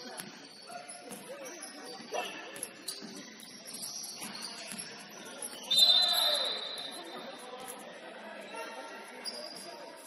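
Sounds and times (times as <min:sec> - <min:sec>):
players' voices in gym: 0:00.0 - 0:10.0.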